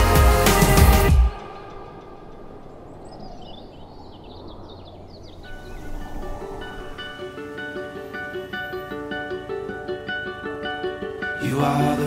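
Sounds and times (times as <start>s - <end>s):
bird chirps: 1.4s - 9.1s
plucked guitar: 7.1s - 12.0s.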